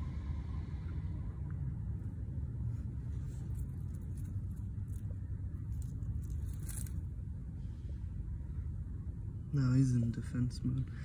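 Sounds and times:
low outdoor rumble: 0:00.0 - 0:11.0
faint rustles: 0:00.7 - 0:08.8.

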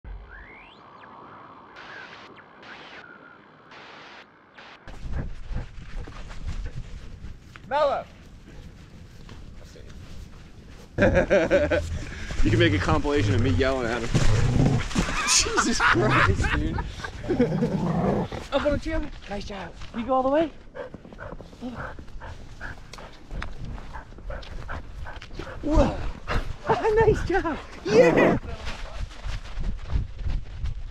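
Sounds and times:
dog panting: 0:05.0 - 0:07.2, 0:20.6 - 0:27.8
low rumbling: 0:11.0 - 0:18.5
breathy patches: 0:11.6 - 0:15.2.

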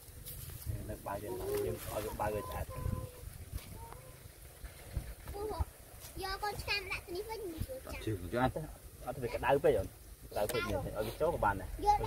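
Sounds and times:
dove cooing: 0:01.2 - 0:05.1.

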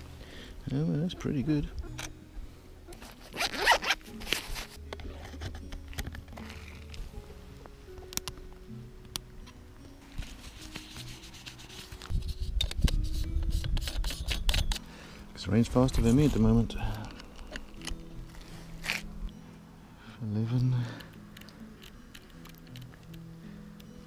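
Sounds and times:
soft background music: 0:00.0 - 0:24.0
rough rustling: 0:15.9 - 0:19.4.

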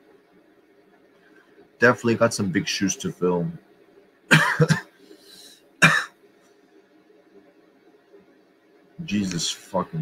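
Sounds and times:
man coughing: 0:04.3 - 0:05.0, 0:05.8 - 0:06.1.

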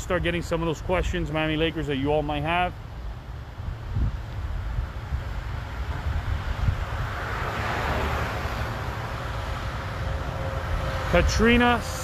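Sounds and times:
vehicle passing on road: 0:02.8 - 0:12.0
wind rumble on microphone: 0:03.4 - 0:12.0.

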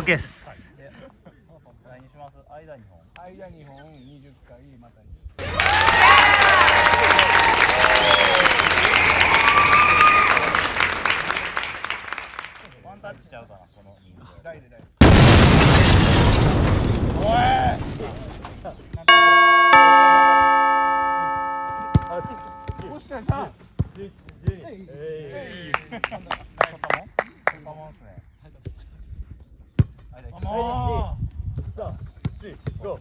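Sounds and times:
loud shouting voices: 0:05.4 - 0:10.7
bright bell-like chime: 0:19.1 - 0:22.9.

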